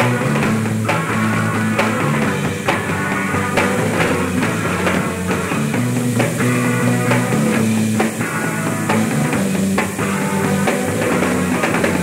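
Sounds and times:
drum strikes: 0:00.0 - 0:12.0
rock band playing: 0:00.0 - 0:12.0.

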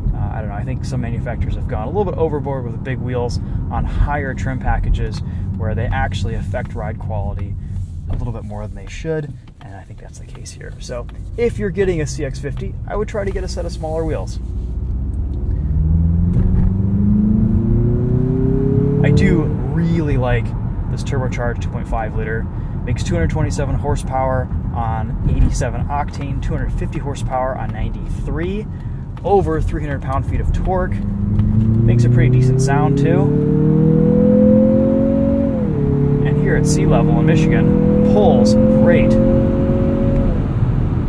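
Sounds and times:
low road rumble: 0:00.0 - 0:41.0
car engine accelerating: 0:00.1 - 0:41.0.

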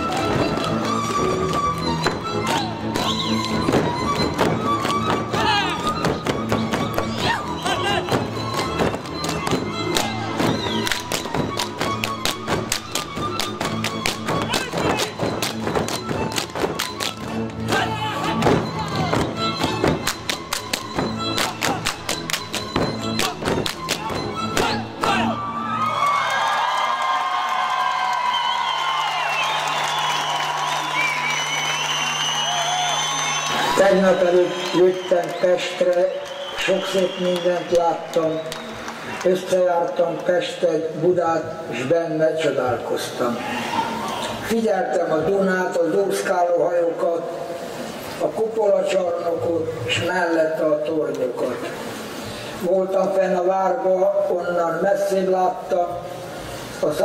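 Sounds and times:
fiddle-led folk band playing: 0:00.0 - 0:25.6
crowd noise: 0:00.0 - 0:57.0.

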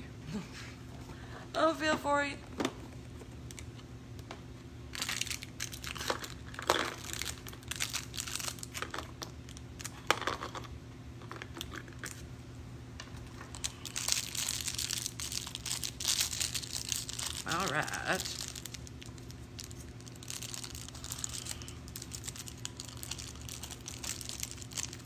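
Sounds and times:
plastic bags crinkling: 0:04.9 - 0:10.6, 0:13.2 - 0:25.0.

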